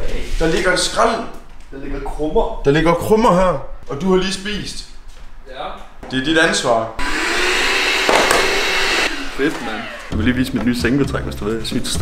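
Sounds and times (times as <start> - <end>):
handheld vacuum cleaner running: 7.0 - 10.2.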